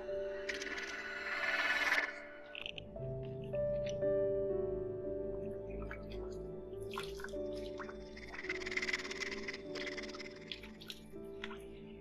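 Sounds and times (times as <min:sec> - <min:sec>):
background music held notes: 0:00.0 - 0:12.0
hands splashing water: 0:05.8 - 0:08.8.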